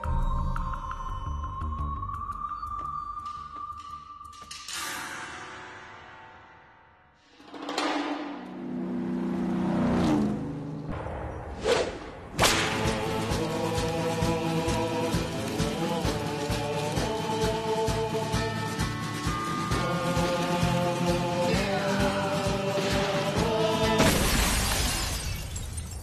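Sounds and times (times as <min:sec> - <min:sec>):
theme music with percussive beat: 0:00.0 - 0:05.3, 0:07.3 - 0:09.4, 0:12.4 - 0:24.1
whoosh and hit sound effect: 0:07.8 - 0:12.8.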